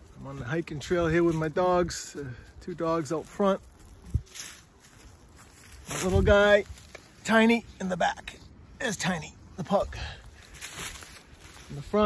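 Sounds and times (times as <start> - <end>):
footsteps on leafy dirt trail: 0.0 - 12.0
leaves rustling: 0.0 - 12.0.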